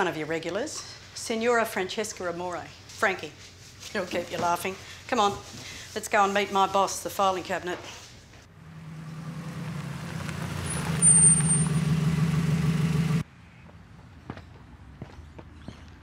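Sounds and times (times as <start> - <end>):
vehicle engine running: 8.5 - 13.2
brake squeal: 8.6 - 13.2.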